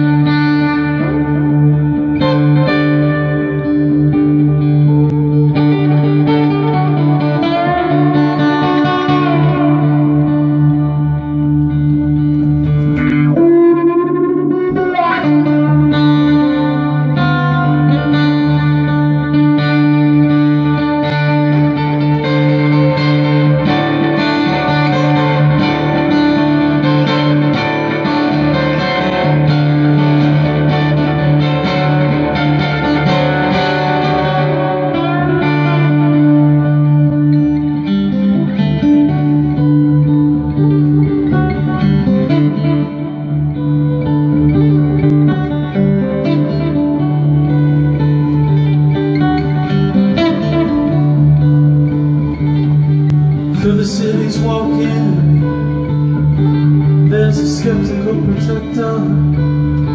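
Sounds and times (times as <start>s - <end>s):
acoustic guitar plucked notes: 0.0s - 59.9s.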